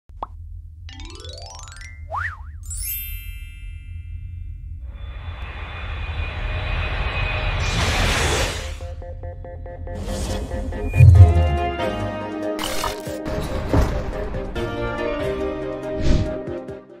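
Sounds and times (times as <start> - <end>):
low music bed: 10.0 - 12.5
rising sweep: 10.2 - 12.0.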